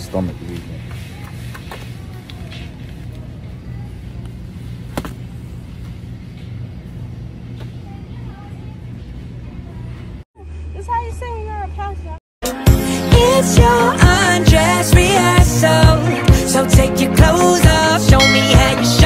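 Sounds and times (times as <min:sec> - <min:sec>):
supermarket background hum: 0:00.0 - 0:12.2
melodic music: 0:12.4 - 0:19.0.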